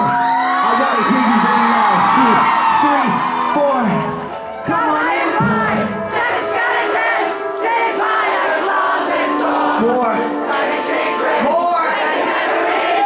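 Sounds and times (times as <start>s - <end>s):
band music: 0.0s - 13.0s
crowd singing together: 4.4s - 13.0s.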